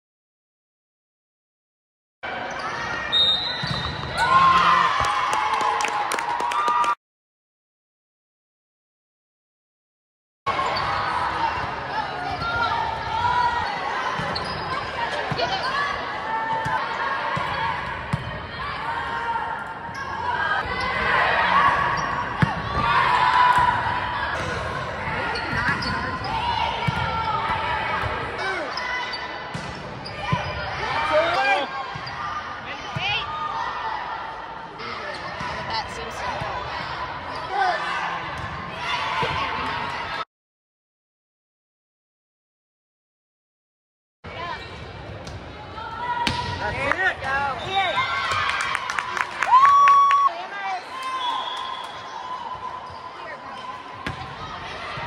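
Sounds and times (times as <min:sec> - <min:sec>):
players shouting and chatting: 0:02.2 - 0:06.1, 0:10.5 - 0:40.2, 0:44.3 - 0:55.0
sneakers squeaking: 0:02.5 - 0:04.2, 0:13.2 - 0:15.9, 0:25.1 - 0:32.4, 0:50.8 - 0:55.0
volleyball hits and bounces: 0:22.3 - 0:28.2, 0:46.2 - 0:47.4.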